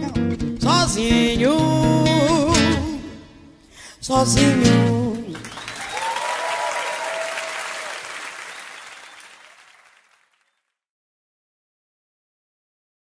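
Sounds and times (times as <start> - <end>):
person singing: 0.0 - 5.5
audience applauding and cheering: 5.3 - 10.5.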